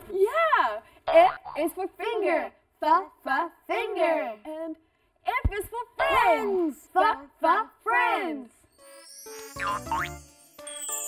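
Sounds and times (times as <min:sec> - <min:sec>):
bright cartoon jingle: 0:08.7 - 0:11.0.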